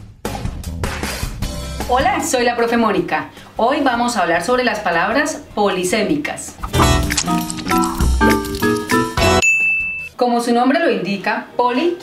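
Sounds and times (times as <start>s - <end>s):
high ding: 9.4s - 10.1s.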